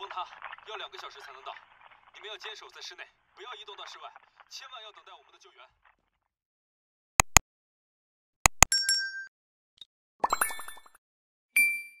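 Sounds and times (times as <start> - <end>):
sharp clicks: 7.2 - 7.4
bright ding: 11.6 - 12.0.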